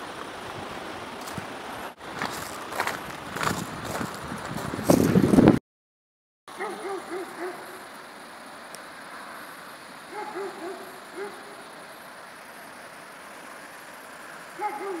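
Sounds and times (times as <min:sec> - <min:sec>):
faint high hiss: 0:06.6 - 0:15.0
distant animal calling: 0:14.6 - 0:15.0.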